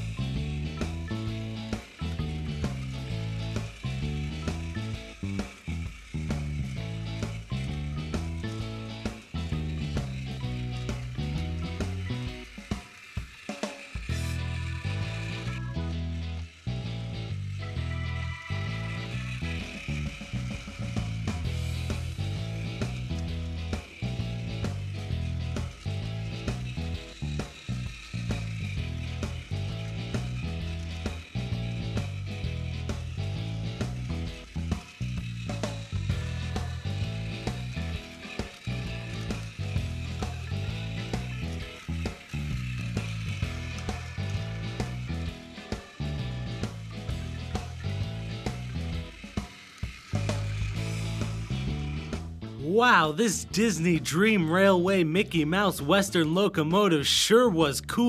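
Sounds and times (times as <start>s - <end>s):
background music with bass line: 0.0s - 12.7s, 14.0s - 58.0s
toy train motor whirring: 0.0s - 58.0s.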